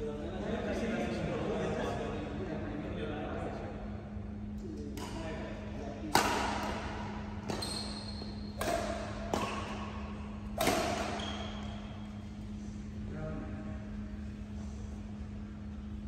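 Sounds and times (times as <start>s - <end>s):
rackets hitting shuttlecock: 4.8s - 5.4s, 6.0s - 12.2s.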